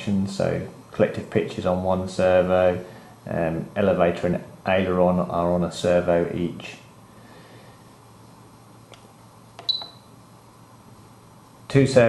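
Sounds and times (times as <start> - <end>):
transmitter button clicks: 8.9 - 10.0
short high beep: 9.6 - 10.0.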